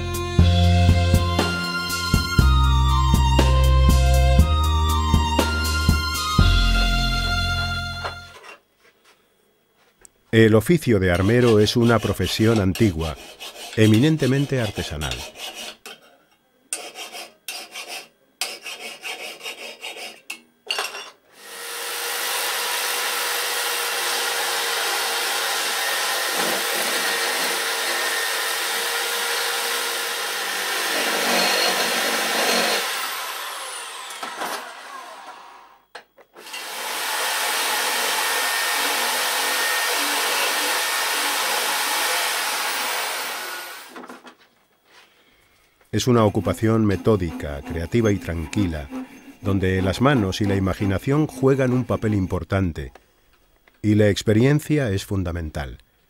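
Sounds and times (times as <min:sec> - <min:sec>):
hand file rasping on steel: 0:11.0 - 0:16.1, 0:16.7 - 0:20.4, 0:46.0 - 0:52.4.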